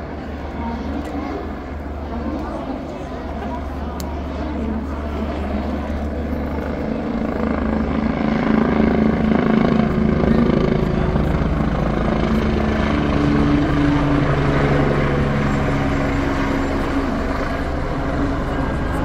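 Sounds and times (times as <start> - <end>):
helicopter engine hum: 0.0 - 19.0
helicopter rotor beating: 0.0 - 19.0.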